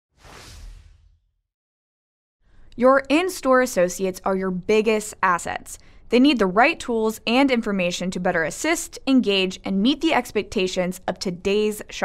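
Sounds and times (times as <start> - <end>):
whoosh sound effect: 0.1 - 1.4.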